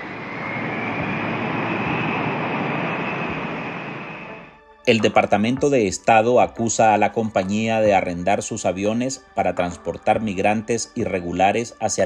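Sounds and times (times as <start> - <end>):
jet airliner passing by: 0.0 - 4.6
faint high whine: 0.0 - 5.8.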